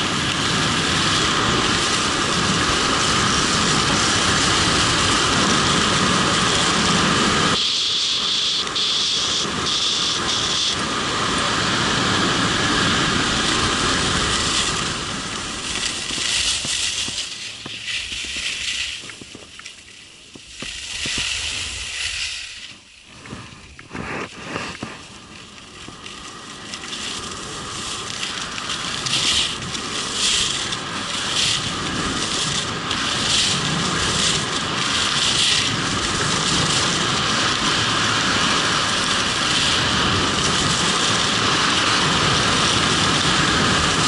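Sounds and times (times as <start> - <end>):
wind rushing over microphone: 0.0 - 44.0
snow scraping under skis: 13.2 - 25.6, 26.2 - 44.0.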